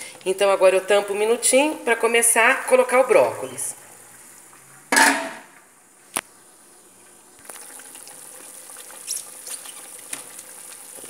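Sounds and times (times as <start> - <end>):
pot boiling and bubbling: 0.0 - 11.0.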